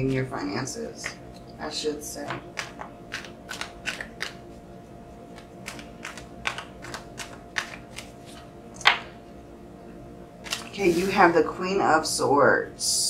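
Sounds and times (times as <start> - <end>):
cards being shuffled: 2.3 - 4.5, 5.3 - 9.1, 10.4 - 11.1.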